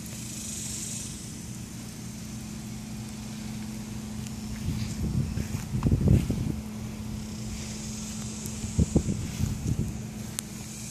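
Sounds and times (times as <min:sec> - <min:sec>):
steady low hum: 0:00.0 - 0:10.9
wind buffeting microphone: 0:03.9 - 0:10.9.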